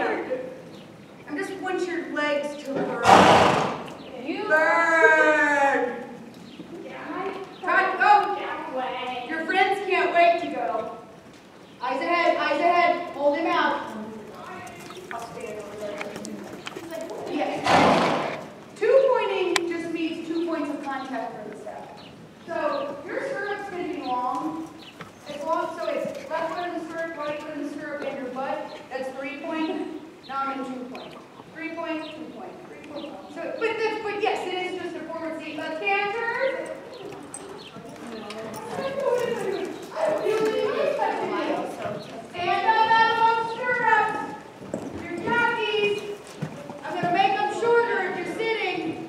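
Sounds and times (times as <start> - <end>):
horse hoofbeats: 2.8 - 4.6, 12.0 - 29.9, 33.0 - 49.0
horse snorting: 3.0 - 4.1, 14.6 - 18.6.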